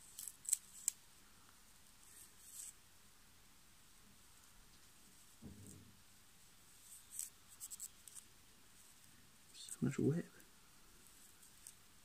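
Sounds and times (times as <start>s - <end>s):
scissors snipping silk: 0.0s - 1.0s.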